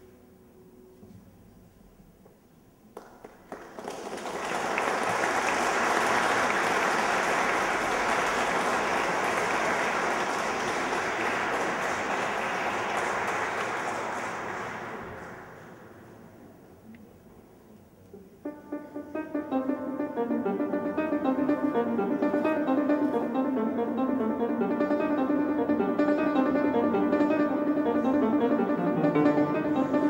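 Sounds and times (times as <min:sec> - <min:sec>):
audience applauding: 0:03.0 - 0:16.2, 0:20.9 - 0:30.0.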